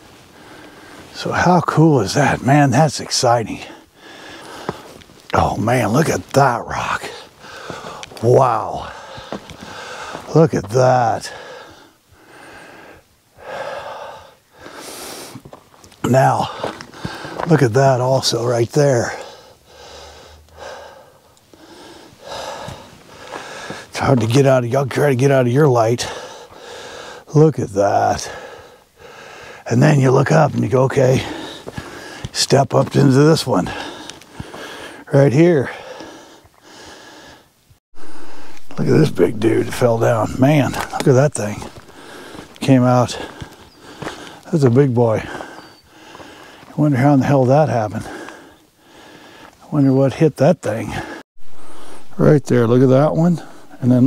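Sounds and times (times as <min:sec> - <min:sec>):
man breathing heavily: 0:00.2 - 0:01.1, 0:03.6 - 0:05.0, 0:07.1 - 0:10.3, 0:11.2 - 0:15.5, 0:16.4 - 0:17.5, 0:19.0 - 0:23.9, 0:26.0 - 0:27.3, 0:28.2 - 0:29.7, 0:31.2 - 0:32.3, 0:33.7 - 0:44.5, 0:45.2 - 0:46.8, 0:47.9 - 0:49.6, 0:50.9 - 0:52.2
man exhaling: 0:41.6 - 0:42.6.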